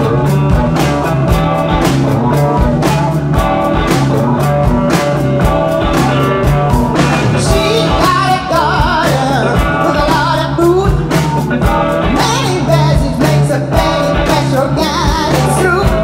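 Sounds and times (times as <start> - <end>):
bass guitar: 0.0 - 16.0
drum kit steady beat: 0.0 - 16.0
electric guitar: 0.0 - 16.0
woman singing with vibrato: 7.4 - 11.1, 12.1 - 16.0.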